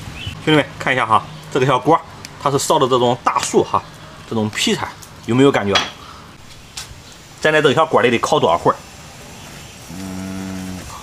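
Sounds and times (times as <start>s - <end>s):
man humming: 9.9s - 11.0s.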